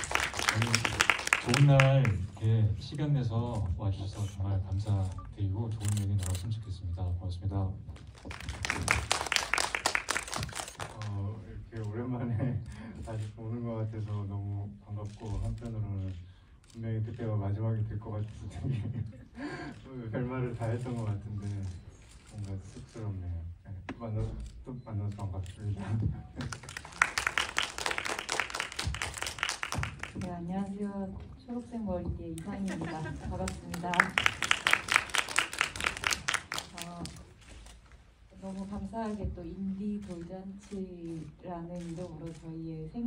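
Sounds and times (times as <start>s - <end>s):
audience applauding: 0.0s - 2.4s, 8.2s - 11.2s, 26.4s - 30.3s, 33.2s - 37.1s.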